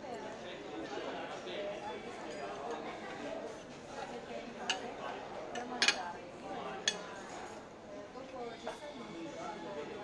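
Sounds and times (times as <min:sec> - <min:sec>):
murmur of voices: 0:00.0 - 0:10.0
cutlery clinking on plates: 0:05.6 - 0:06.0, 0:06.8 - 0:07.3.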